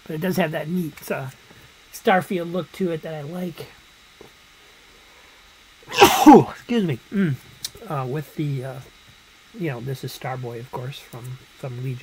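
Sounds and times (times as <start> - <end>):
man coughing loudly: 5.9 - 6.5.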